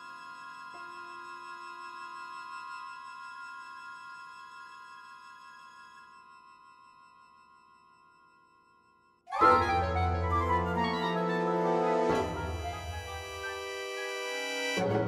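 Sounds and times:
low orchestral note: 9.4s - 13.8s
soft low orchestral chord: 9.4s - 15.0s.

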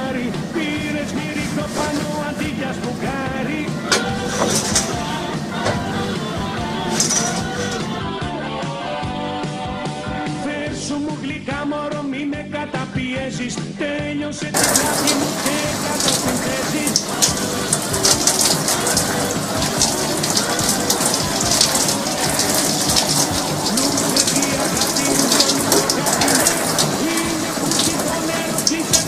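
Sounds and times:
shower water spraying: 0.0s - 8.0s, 14.6s - 29.0s.

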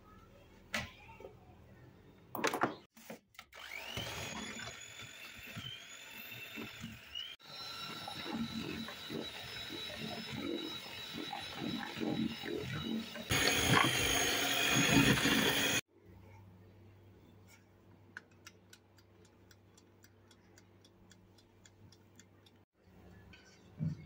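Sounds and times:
electric hand mixer whining: 3.6s - 15.9s.

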